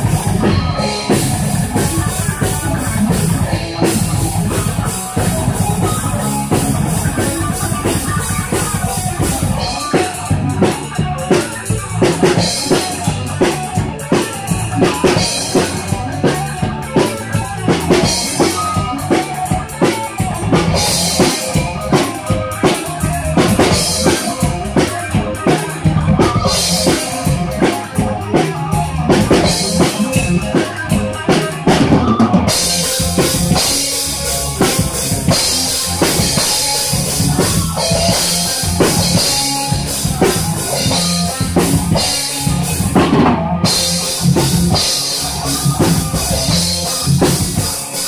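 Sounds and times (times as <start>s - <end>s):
bass drum: 0.0s - 48.0s
bass guitar line: 0.0s - 48.0s.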